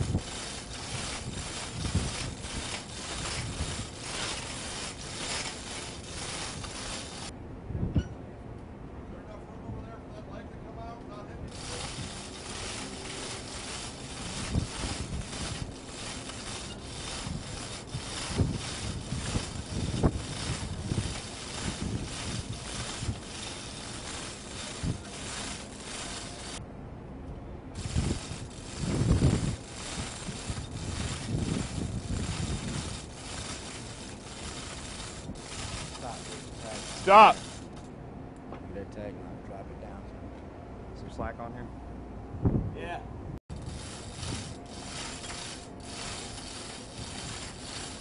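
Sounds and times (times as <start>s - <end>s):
hoist chain and metal clicking: 0.0s - 7.3s, 11.5s - 26.6s, 27.8s - 37.9s, 43.5s - 48.0s
wind on microphone: 0.0s - 8.2s, 11.4s - 26.6s, 27.8s - 37.6s, 42.3s - 48.0s.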